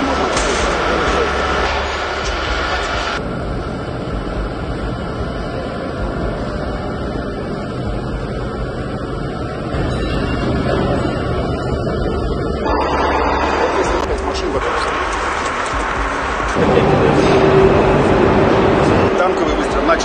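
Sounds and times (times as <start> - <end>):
factory machinery rumbling: 0.0 - 20.0.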